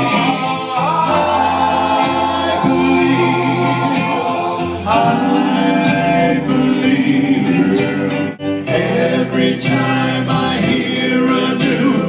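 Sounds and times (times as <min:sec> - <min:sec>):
backing track with bass line: 0:00.0 - 0:12.0
men singing in harmony: 0:00.0 - 0:12.0.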